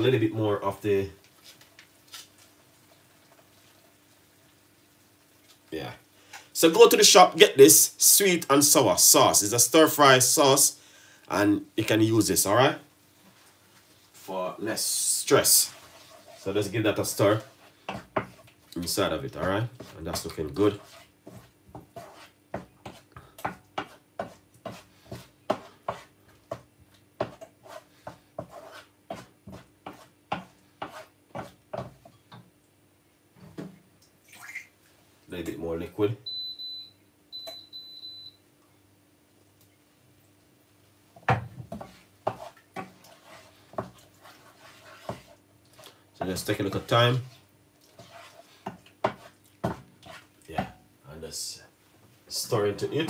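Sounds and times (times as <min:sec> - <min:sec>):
wooden spoon stirring in pan: 0:00.7 - 0:05.7, 0:11.8 - 0:32.4, 0:41.1 - 0:50.8.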